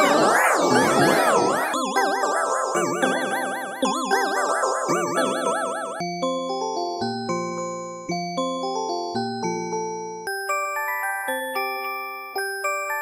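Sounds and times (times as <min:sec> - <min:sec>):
warbling phone ringtone melody: 0:02.9 - 0:06.2.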